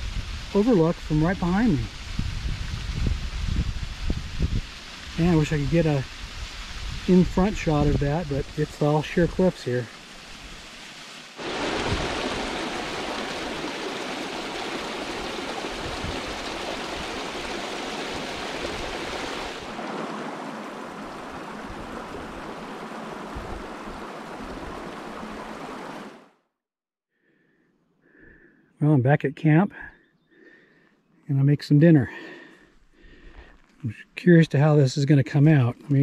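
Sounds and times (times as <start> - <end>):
stream rushing over rocks: 4.9 - 26.3.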